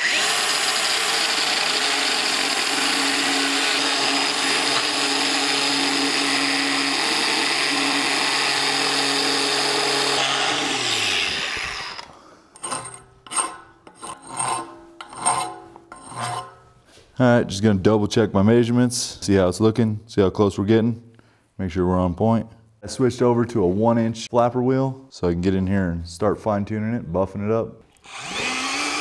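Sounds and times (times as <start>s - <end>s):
grinder winding down: 0.0s - 13.5s, 28.0s - 29.0s
angle grinder grinding steel pipe: 0.0s - 16.7s, 28.0s - 29.0s.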